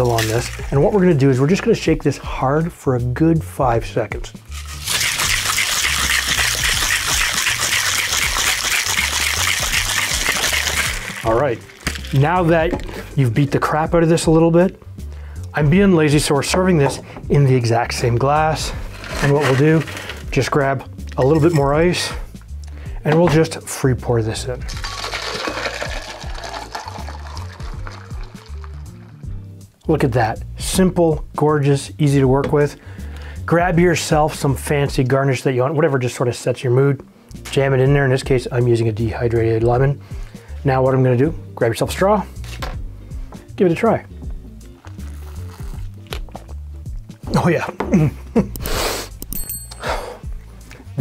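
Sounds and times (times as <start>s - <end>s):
ice rattling in cocktail shaker: 0.0s - 1.0s, 4.5s - 12.2s, 19.0s - 20.4s, 24.7s - 29.0s
background music: 0.0s - 51.0s
liquid splashing into glass: 4.6s - 12.2s, 24.7s - 28.8s.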